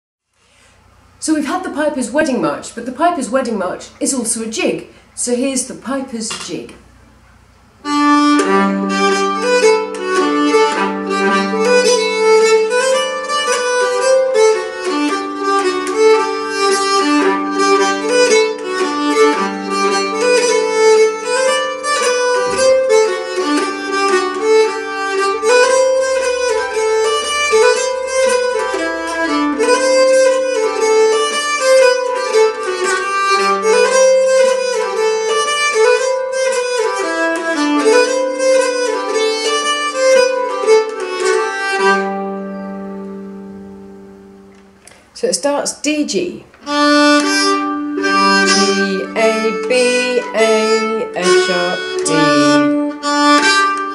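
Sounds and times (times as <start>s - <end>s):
bowed string jig melody: 1.3s - 45.0s, 46.1s - 53.9s
low drone note: 48.0s - 53.0s.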